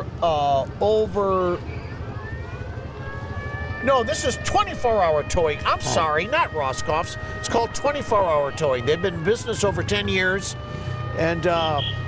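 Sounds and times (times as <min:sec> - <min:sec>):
truck engine rumbling: 0:00.0 - 0:12.0.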